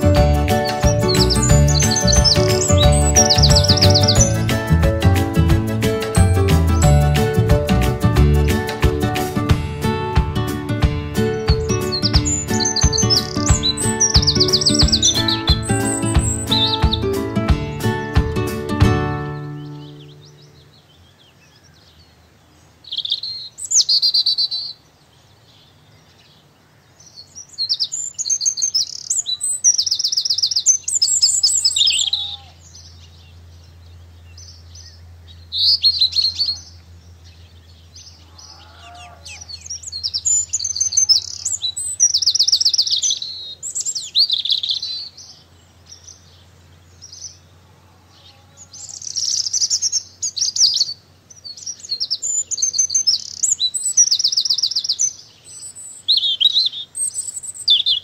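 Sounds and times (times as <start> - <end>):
songbird trilling: 0.0 - 4.4, 11.4 - 17.1, 22.8 - 24.8, 27.1 - 47.5, 48.3 - 58.0.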